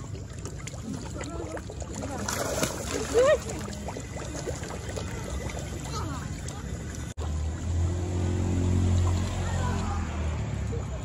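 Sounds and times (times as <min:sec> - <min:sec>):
engine running at low speed: 0:06.5 - 0:11.0.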